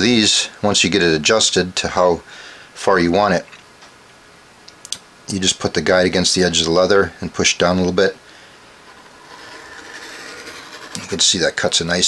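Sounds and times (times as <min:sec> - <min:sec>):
groover scraping leather: 0:08.7 - 0:11.7.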